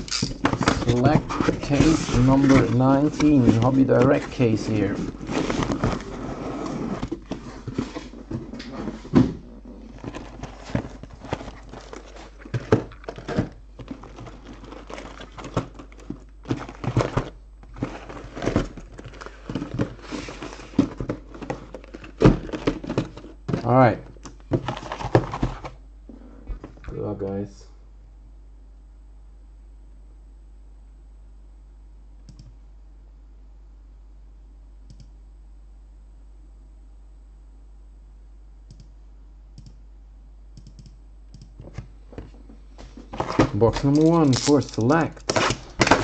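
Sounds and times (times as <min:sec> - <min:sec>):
cardboard scraping and rustling: 0:00.0 - 0:25.8, 0:42.3 - 0:46.0
cardboard boxes knocking and thudding: 0:07.0 - 0:23.7, 0:24.5 - 0:25.7, 0:45.3 - 0:46.0.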